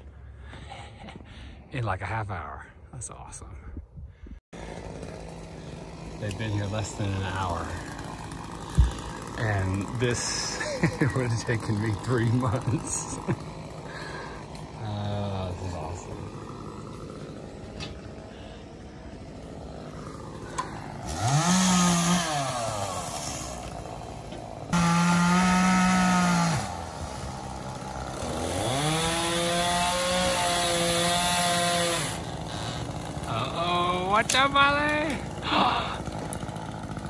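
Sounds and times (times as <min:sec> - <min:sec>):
chainsaw revving: 0:04.6 - 0:37.0.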